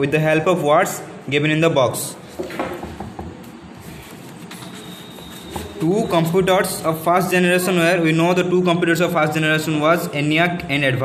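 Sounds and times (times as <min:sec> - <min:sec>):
paper rustling: 0:03.4 - 0:06.4.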